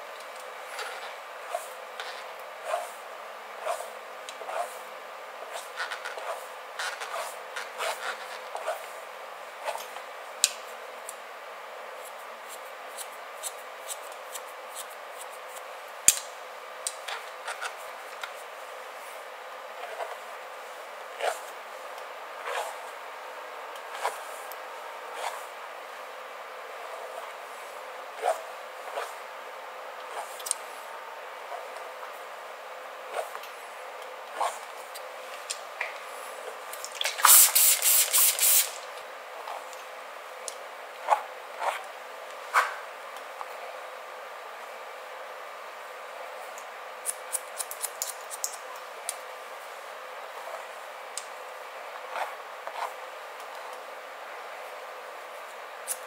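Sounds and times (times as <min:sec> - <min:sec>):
spray bottle hissing: 0:37.2 - 0:38.8
comb and scissors clicking: 0:47.0 - 0:48.6
scissors snipping: 0:47.0 - 0:48.6.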